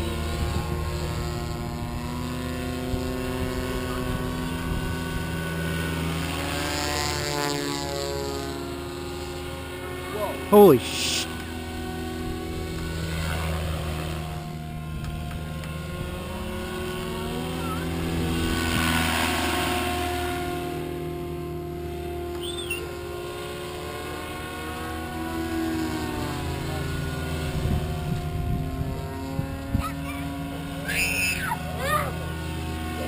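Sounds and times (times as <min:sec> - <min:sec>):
rc helicopter motor and rotor whine: 0:00.0 - 0:33.0.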